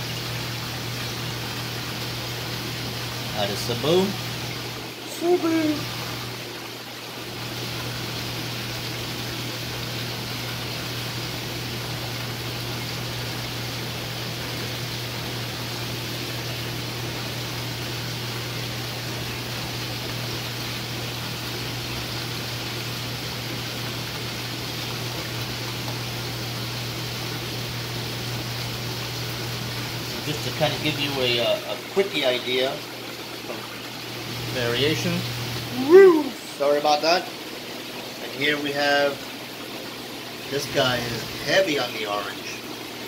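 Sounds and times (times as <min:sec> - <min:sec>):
pump humming: 0:00.0 - 0:43.0
water rushing through pipes: 0:00.0 - 0:43.0.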